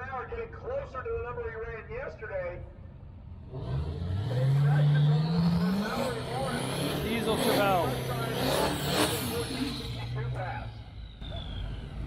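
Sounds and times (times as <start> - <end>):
drag racer engine accelerating: 3.4 - 12.0.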